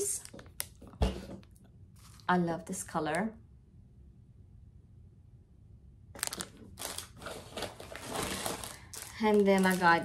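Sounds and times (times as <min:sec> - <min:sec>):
plastic bag crinkling: 0:06.2 - 0:10.0.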